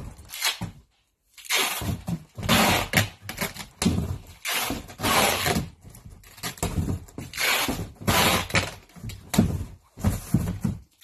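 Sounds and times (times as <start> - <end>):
cardboard boxes being handled: 1.8 - 11.0.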